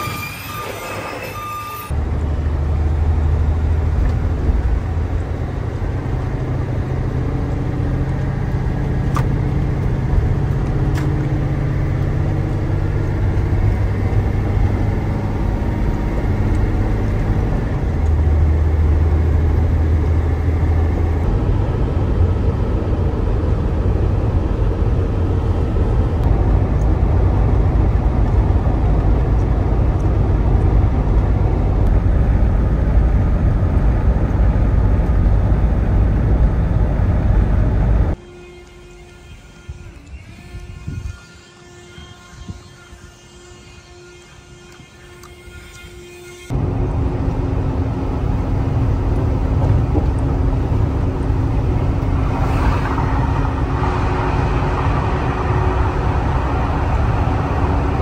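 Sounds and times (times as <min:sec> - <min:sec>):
truck engine drone from cab: 0:00.0 - 0:58.0.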